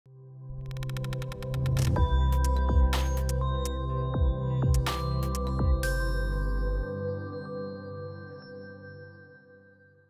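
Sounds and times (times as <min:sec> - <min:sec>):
fast pulsing electronic pattern: 0:00.6 - 0:03.4.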